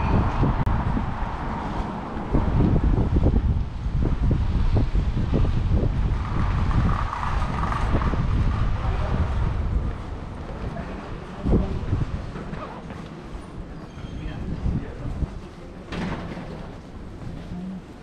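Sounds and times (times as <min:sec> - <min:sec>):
wind buffeting microphone: 0:00.0 - 0:18.0
faint passing voices: 0:08.5 - 0:18.0.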